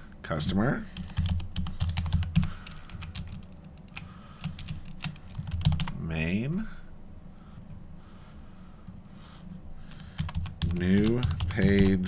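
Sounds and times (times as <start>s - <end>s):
computer keyboard typing: 0.9s - 6.0s, 9.9s - 12.0s.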